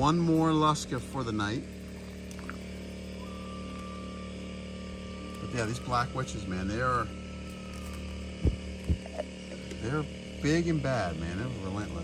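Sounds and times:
low hum: 0.0 - 12.0
dull low thumps: 8.3 - 9.2.

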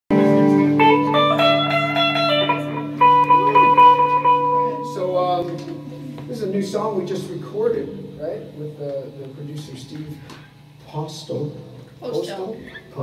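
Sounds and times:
electric guitar through amplifier: 0.1 - 13.0.

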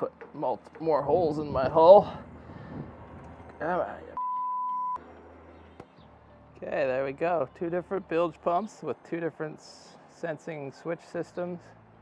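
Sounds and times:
high electronic censor bleep: 4.2 - 5.0.

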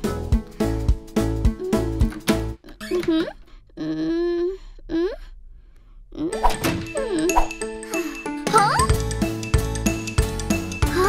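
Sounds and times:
playful cartoon music: 0.0 - 3.4, 6.2 - 11.0.

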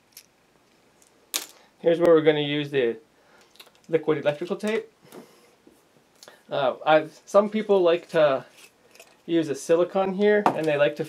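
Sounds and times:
person talking: 3.9 - 4.9, 6.5 - 8.5, 9.3 - 11.0.

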